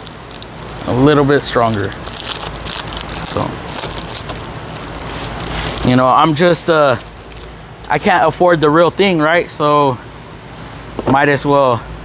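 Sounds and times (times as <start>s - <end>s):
crackling and crinkling material: 0.0s - 8.0s.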